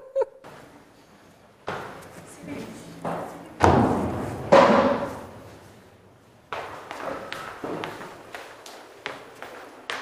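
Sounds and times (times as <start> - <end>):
echoing noise in large room: 0.0 - 10.0.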